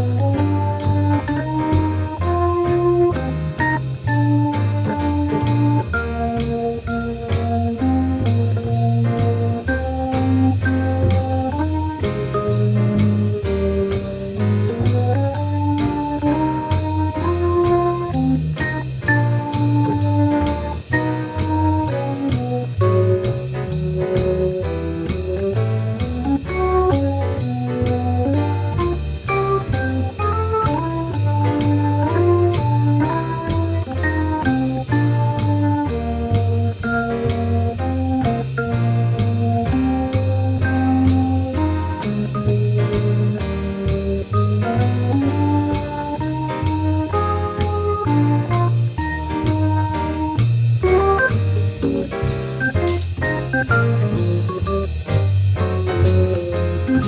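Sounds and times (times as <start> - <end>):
bass line: 0.0 - 57.0
organ playing chords and melody: 0.0 - 57.0
steady drum beat: 0.0 - 57.0.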